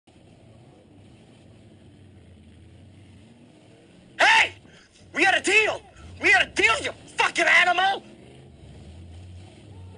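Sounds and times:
faint car engine running: 0.1 - 9.9.

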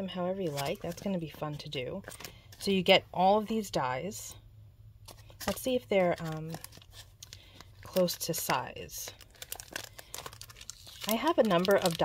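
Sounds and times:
plastic packaging crinkling: 0.4 - 1.1, 5.1 - 12.0.

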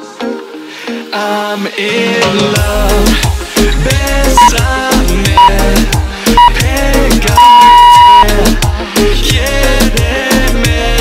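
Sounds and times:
background music: 0.0 - 11.0
interval timer beeps: 4.4 - 4.6, 5.4 - 5.6, 6.4 - 6.6, 7.4 - 8.3.

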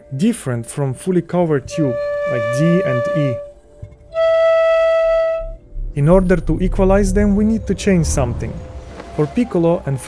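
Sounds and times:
piccolo held low note: 1.6 - 10.0.

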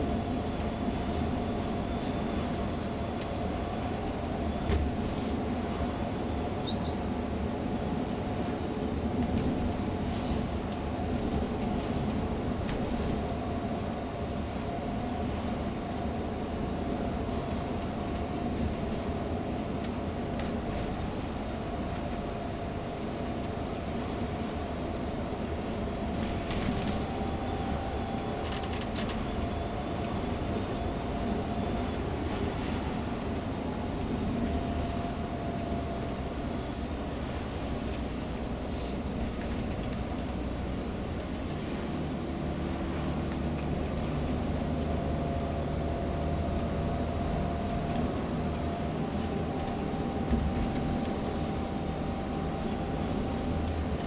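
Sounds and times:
coach engine and road noise: 0.0 - 54.0
faint steady whine: 12.8 - 39.6, 44.4 - 54.0.

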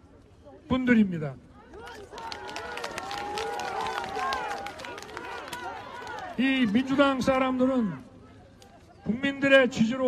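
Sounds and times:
crowd cheering and shouting: 1.6 - 7.1.

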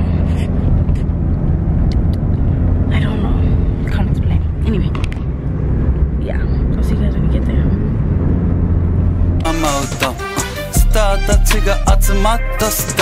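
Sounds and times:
car engine and road noise: 0.0 - 13.0
music: 9.4 - 13.0.

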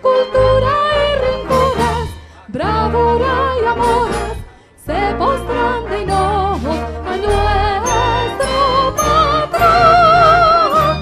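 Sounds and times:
instrumental accompaniment: 0.4 - 11.0
person singing a hymn: 4.9 - 11.0.

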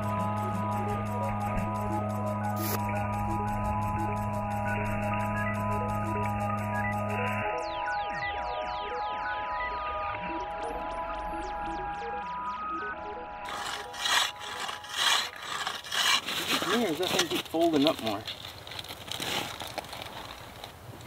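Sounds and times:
background music with mallet tones: 0.0 - 13.5
ice saw rasping through ice: 2.6 - 2.8, 13.4 - 20.0.

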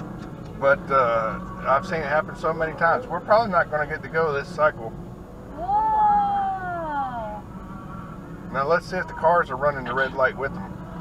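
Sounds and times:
car engine idling hum: 0.0 - 11.0.

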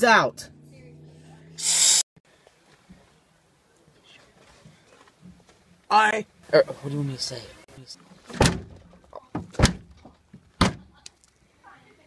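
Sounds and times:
heavy thumps on car trunk lid: 8.3 - 8.8.

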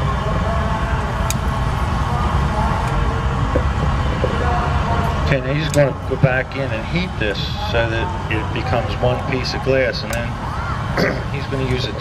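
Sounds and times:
furnace burner roaring: 0.0 - 12.0.

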